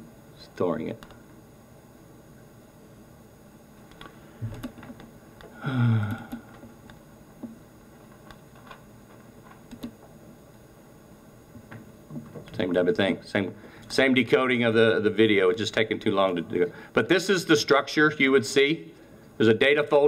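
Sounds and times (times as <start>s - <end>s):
mouse and keyboard clicks: 9.6s - 10.0s.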